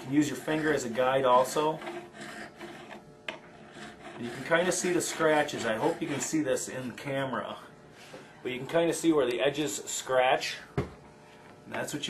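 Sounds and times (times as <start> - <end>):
file scraping on fret wire: 0.0 - 6.6.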